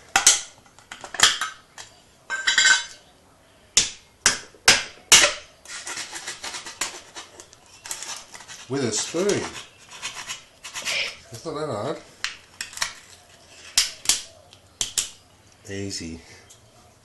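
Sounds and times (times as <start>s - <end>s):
foil seal crinkling: 5.7s - 10.7s.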